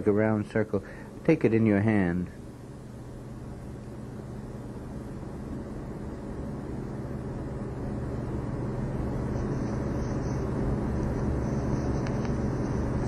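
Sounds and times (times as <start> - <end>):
low electrical hum: 0.0 - 13.0.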